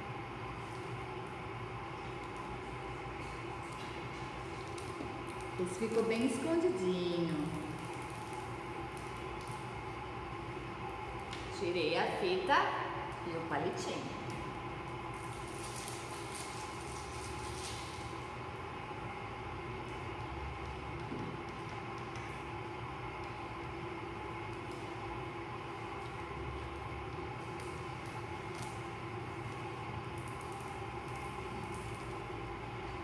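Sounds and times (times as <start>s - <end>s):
room hum: 0.0s - 33.0s
adhesive tape crackling: 0.5s - 9.8s, 14.3s - 18.3s, 25.8s - 33.0s.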